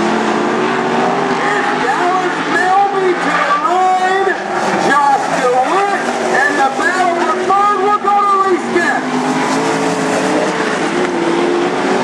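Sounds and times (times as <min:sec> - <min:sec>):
race car engines droning: 0:00.0 - 0:12.0
person speaking: 0:01.3 - 0:09.1.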